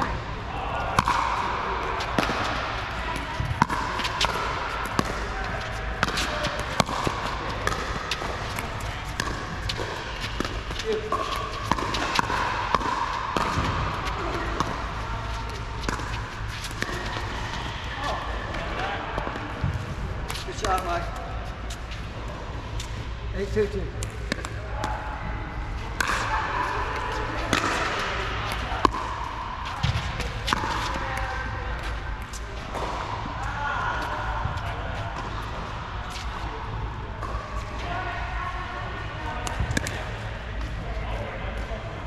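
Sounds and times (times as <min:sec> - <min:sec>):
ball bouncing on court: 0:00.0 - 0:21.3, 0:22.8 - 0:25.0, 0:25.8 - 0:36.4.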